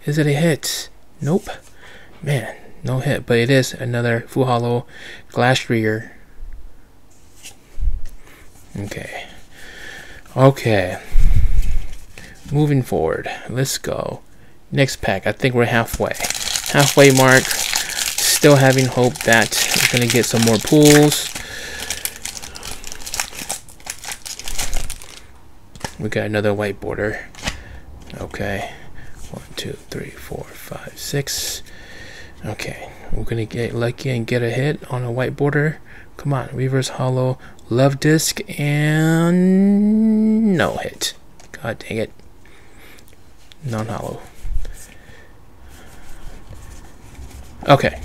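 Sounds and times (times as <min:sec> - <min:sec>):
cards sliding and rustling: 0:07.1 - 0:08.6, 0:25.8 - 0:26.0, 0:27.3 - 0:27.6
foil wrapper crinkling: 0:15.9 - 0:26.0.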